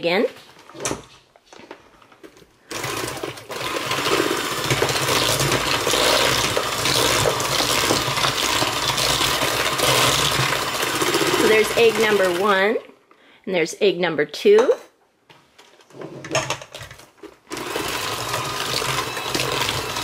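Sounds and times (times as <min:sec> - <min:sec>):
electric hand mixer running: 0:02.7 - 0:12.5, 0:17.5 - 0:20.0.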